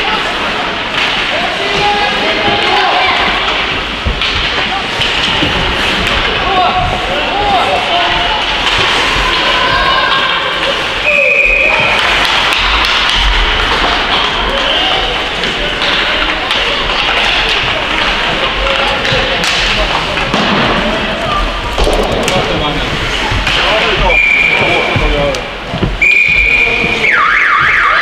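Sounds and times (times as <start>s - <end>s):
hockey sticks and puck knocking: 1.0s - 7.1s, 11.8s - 27.8s
players and spectators calling out: 6.3s - 13.3s
high whistle blast: 26.0s - 27.7s.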